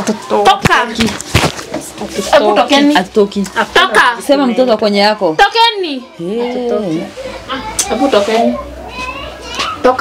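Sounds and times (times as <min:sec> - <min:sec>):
raised overlapping voices: 0:00.0 - 0:10.0.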